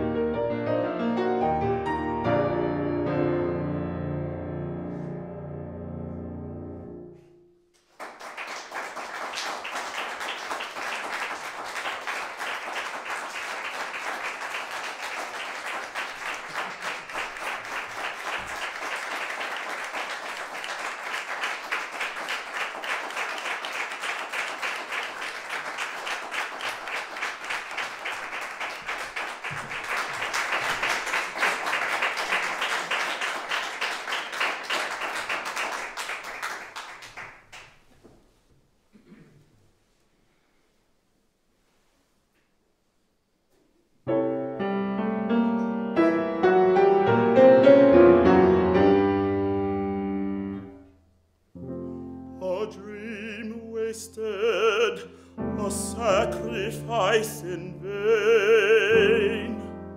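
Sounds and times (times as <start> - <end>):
audience applauding: 7.8 - 38.0.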